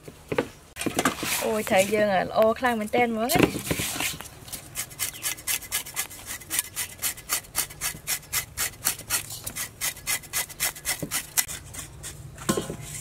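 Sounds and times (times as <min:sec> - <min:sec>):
knife scraping fish scales: 0:03.8 - 0:13.0.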